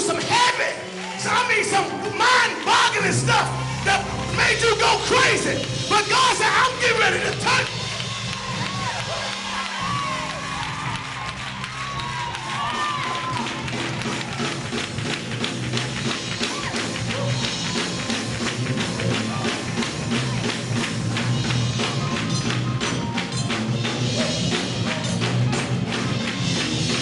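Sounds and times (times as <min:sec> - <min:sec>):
gospel band playing upbeat groove: 0:00.0 - 0:27.0
drum kit: 0:03.1 - 0:27.0.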